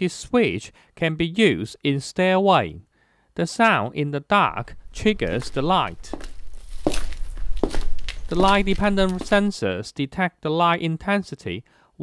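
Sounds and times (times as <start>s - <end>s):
footsteps in a stairwell: 4.6s - 9.6s.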